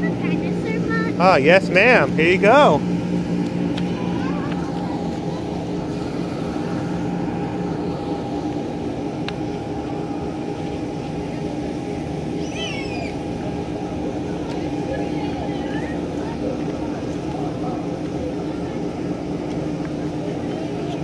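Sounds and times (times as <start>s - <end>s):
electric blower fan humming: 0.0s - 21.0s.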